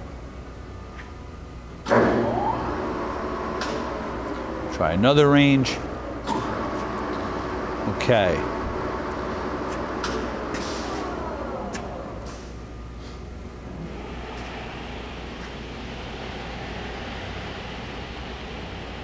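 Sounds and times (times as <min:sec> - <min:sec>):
lathe spindle whine winding down: 0:01.9 - 0:12.3
steady lathe whirr: 0:01.9 - 0:12.8, 0:13.4 - 0:19.0.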